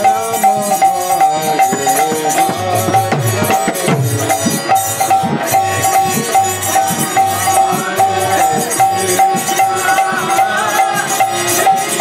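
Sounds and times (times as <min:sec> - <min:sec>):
hand drum: 0:00.0 - 0:12.0
harmonium: 0:00.0 - 0:12.0
man singing: 0:00.0 - 0:12.0
small hand cymbals: 0:00.0 - 0:12.0.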